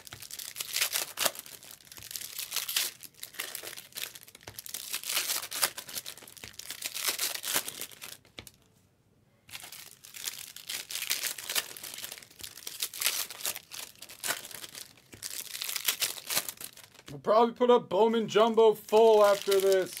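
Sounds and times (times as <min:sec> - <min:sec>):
foil wrappers crinkling: 0:00.0 - 0:08.6, 0:09.5 - 0:17.1, 0:18.8 - 0:20.0.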